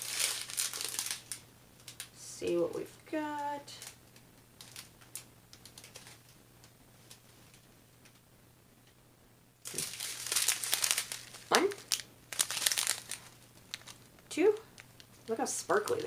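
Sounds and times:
plastic bags crinkling: 0.0 - 2.2, 4.6 - 6.3, 9.6 - 16.0.

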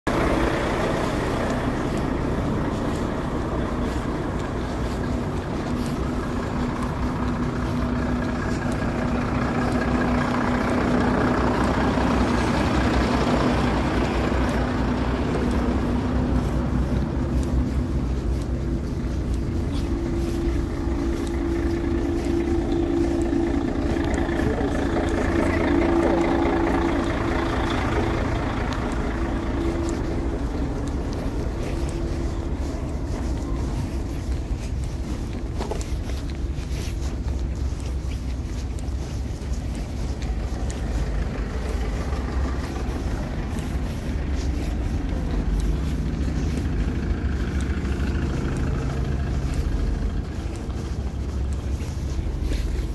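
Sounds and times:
lorry diesel engines idling: 0.0 - 52.9.

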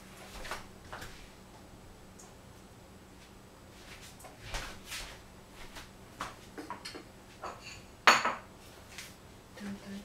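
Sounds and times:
kitchenware clattering: 6.6 - 8.5.

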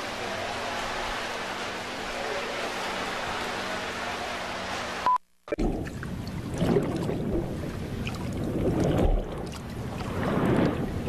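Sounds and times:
rush of water-like noise: 5.6 - 11.0.

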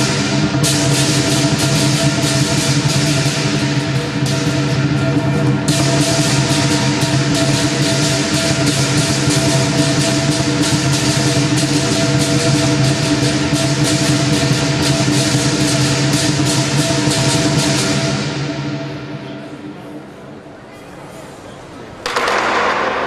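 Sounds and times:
drum beating fast: 0.0 - 18.5
cymbals crashing: 0.0 - 19.8.

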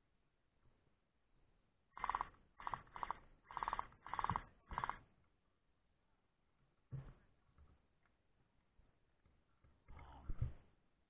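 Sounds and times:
gel blaster full-auto bursts: 2.0 - 5.0.

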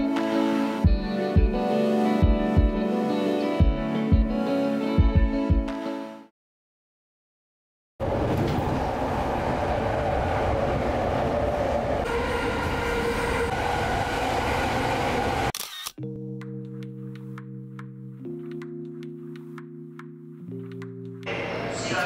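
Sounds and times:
music with held tones: 0.0 - 6.3, 16.0 - 21.3
train rumble and rattle: 8.0 - 15.5.

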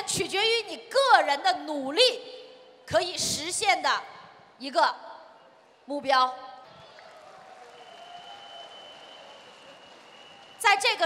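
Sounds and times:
faint audience applause: 6.7 - 11.0.

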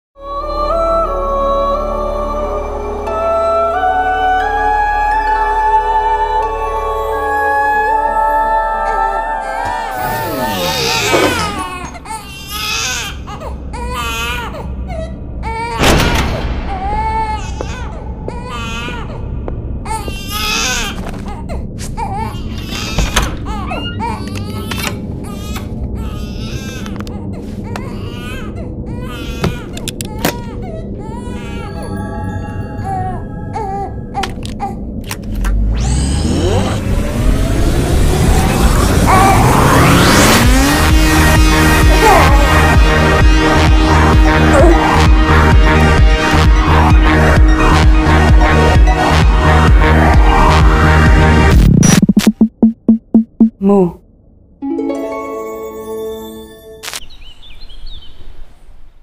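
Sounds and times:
infant crying: 9.5 - 15.8, 16.7 - 34.9, 44.4 - 45.1.

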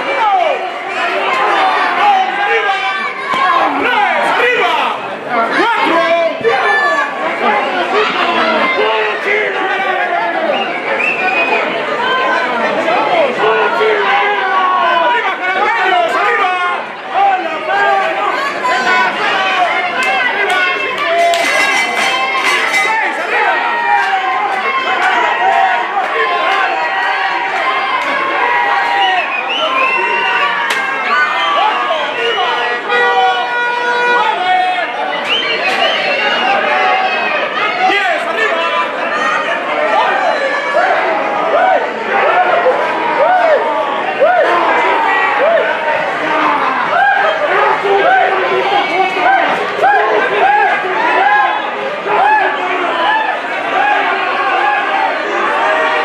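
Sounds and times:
crowd shouting and chattering: 0.0 - 56.0.

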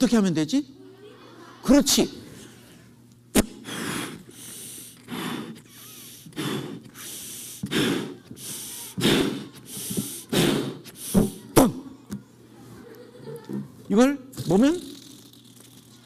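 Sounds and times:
puffs into balloon: 3.4 - 11.5
man gasping breaths: 3.6 - 11.4.

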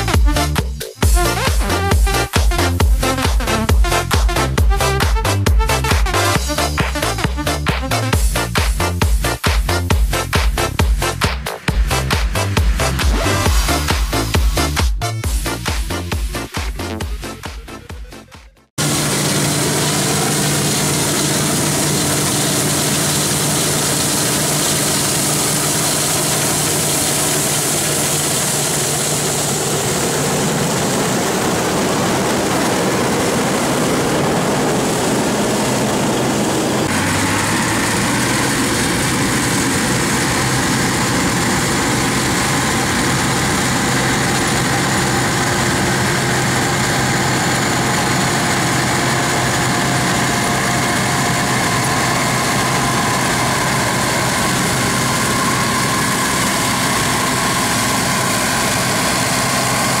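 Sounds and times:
threshing machinery running: 0.0 - 18.0, 18.8 - 60.0
combine harvester diesel engine: 0.0 - 60.0.

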